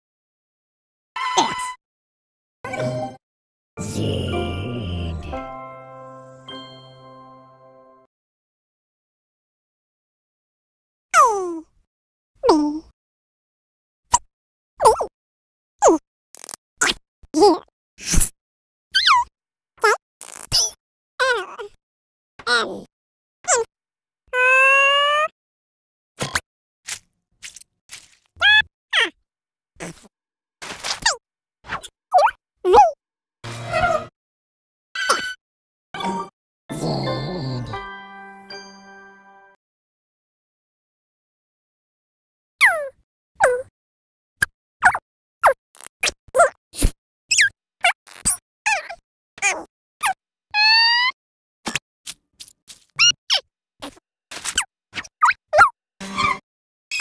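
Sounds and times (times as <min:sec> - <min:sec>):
sped-up cartoon sound effects: 0:03.8 - 0:05.6.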